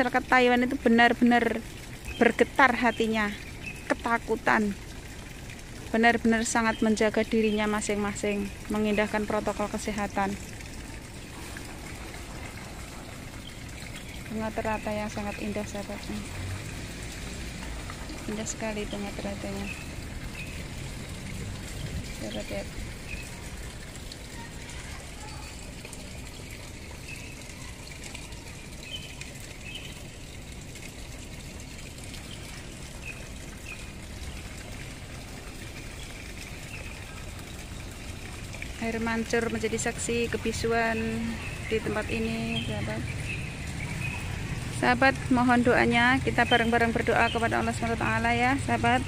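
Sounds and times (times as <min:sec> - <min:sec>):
fountain water splashing: 0:00.0 - 0:49.0.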